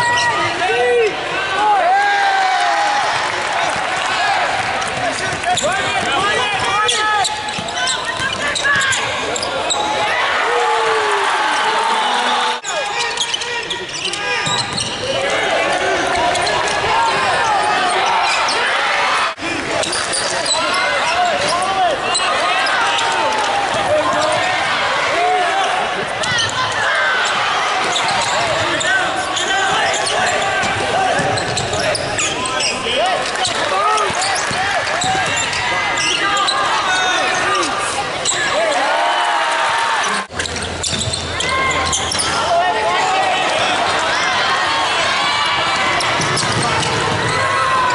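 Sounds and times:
sneakers squeaking: 0.0 - 0.6, 3.7 - 10.1, 12.6 - 18.8, 19.6 - 38.9, 40.0 - 47.9
voices of players and spectators: 0.0 - 47.9.

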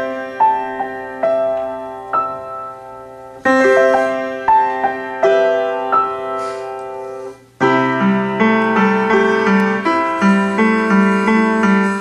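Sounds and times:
upright piano playing: 0.0 - 12.0.

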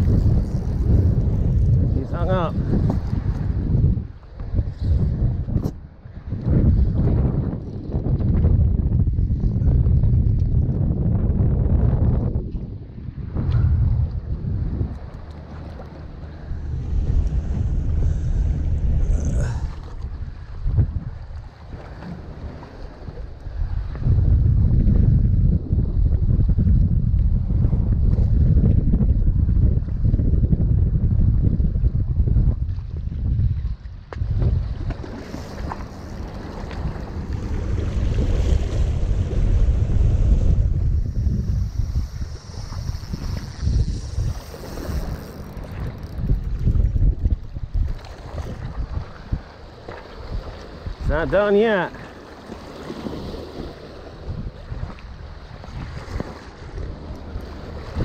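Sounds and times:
wind buffeting microphone: 0.0 - 58.0
water lapping against rocks: 33.8 - 39.7, 41.7 - 58.0.

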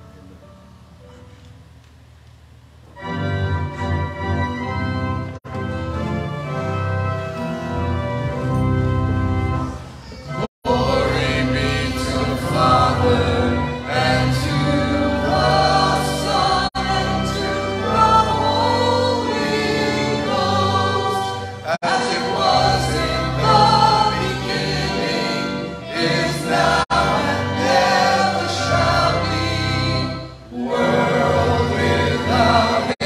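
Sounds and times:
choir singing: 10.4 - 33.0.

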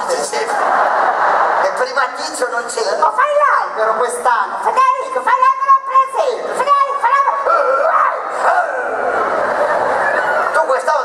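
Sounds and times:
audience noise: 0.0 - 11.0
man's high-pitched wailing vocalizing: 6.6 - 9.1.

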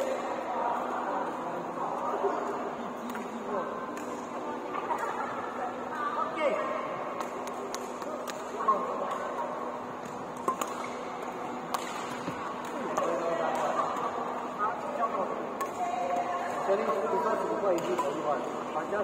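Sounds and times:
murmur of voices: 0.0 - 19.0
rackets striking shuttlecock: 10.0 - 14.2, 15.6 - 18.6.

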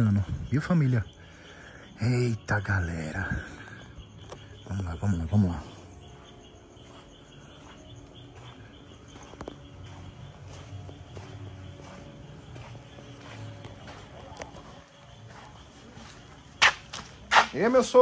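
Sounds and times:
night insects chirping: 0.0 - 18.0
footsteps on dirt: 2.5 - 18.0.

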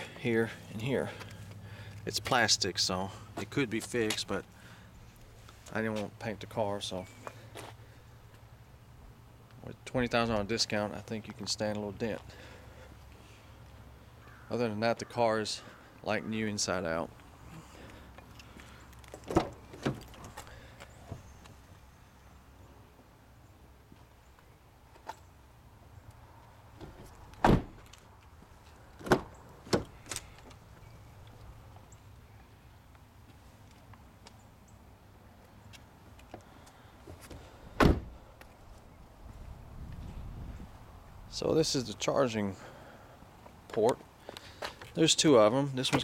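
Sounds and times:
car door shutting thunk: 26.9 - 27.8, 37.8 - 38.2.

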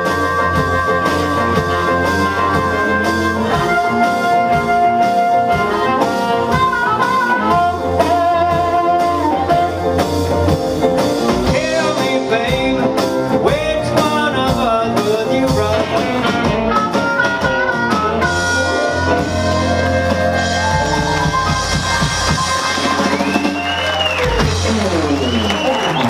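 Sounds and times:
drums: 0.0 - 26.0
electric guitar: 0.0 - 26.0
piano: 0.0 - 26.0
upright bass: 0.0 - 26.0
amplified harmonica solo: 16.6 - 26.0.

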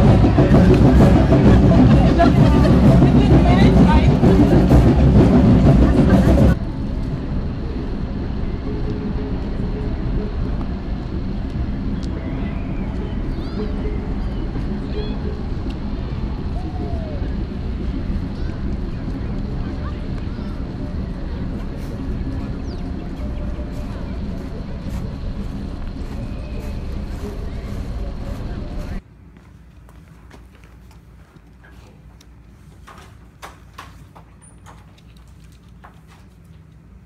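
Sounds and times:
faint distant voices: 0.0 - 37.0
low urban rumble: 0.0 - 37.0.

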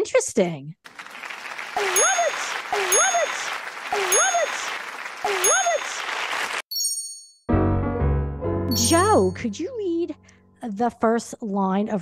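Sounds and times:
studio audience cheering: 0.9 - 6.6
bright ding: 8.7 - 9.4
short high chime: 8.7 - 9.4.

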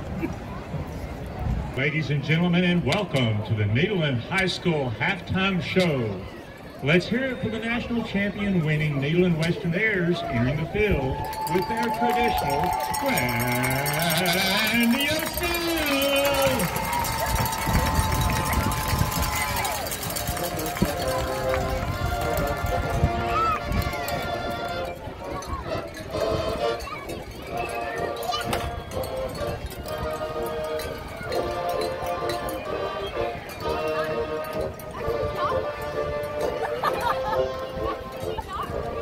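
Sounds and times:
marching band playing: 10.1 - 39.0
brass chords: 19.9 - 26.9, 28.0 - 39.0.

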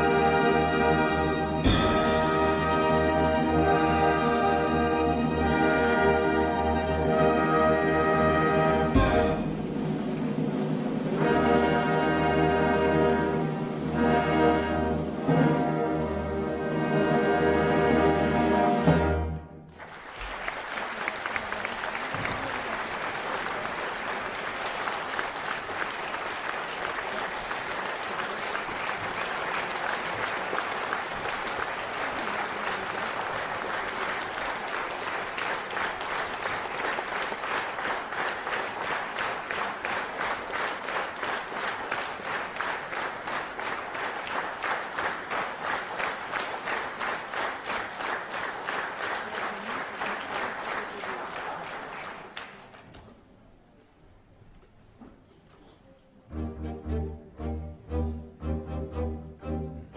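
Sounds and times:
rhythmic unison clapping: 19.7 - 53.0
audience applauding: 19.7 - 53.3.

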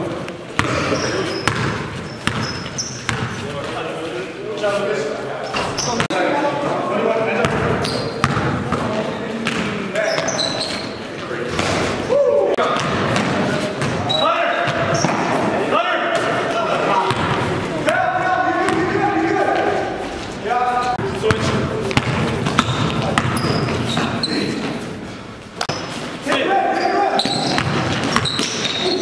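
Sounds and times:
basketball bouncing on gym floor: 0.6 - 3.4, 7.4 - 10.4, 12.6 - 15.4, 17.1 - 17.5, 21.0 - 24.2, 27.2 - 28.8
players calling out: 5.6 - 29.0.

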